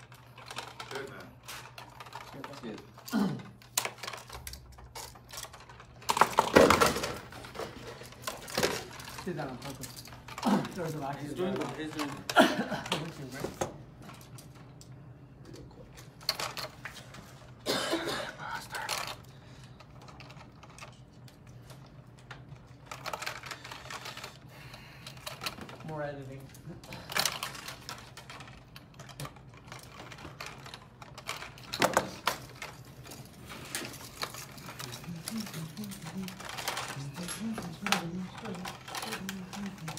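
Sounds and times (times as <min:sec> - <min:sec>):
hand tools clicking and clattering: 0:22.4 - 0:39.9.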